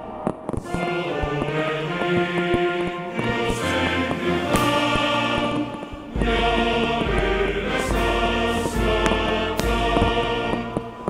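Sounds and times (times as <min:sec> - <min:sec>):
sharp cracks: 0:00.0 - 0:06.3
choral music with held chords: 0:00.0 - 0:11.0
deep bass: 0:06.2 - 0:10.6.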